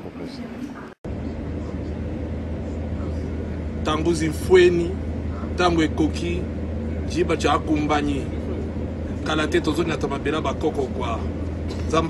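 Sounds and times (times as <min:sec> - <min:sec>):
aircraft cabin drone: 0:00.0 - 0:12.0.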